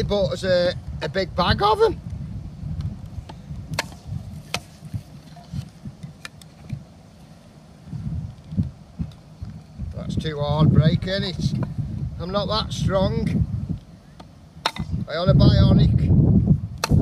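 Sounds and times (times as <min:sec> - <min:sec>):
wind rumble on microphone: 0:00.0 - 0:17.0
hatchet striking wood: 0:03.3 - 0:04.8, 0:14.2 - 0:15.0, 0:16.8 - 0:17.0.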